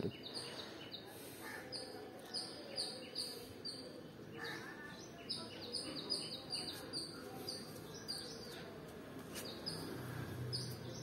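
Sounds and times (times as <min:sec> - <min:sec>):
faint background noise: 0:00.0 - 0:11.0
small birds chirping: 0:00.0 - 0:11.0.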